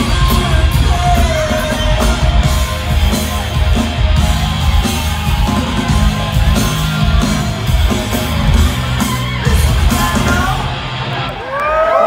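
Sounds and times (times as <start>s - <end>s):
bass guitar: 0.0s - 11.9s
drums: 0.0s - 12.0s
electric guitar: 0.0s - 12.0s.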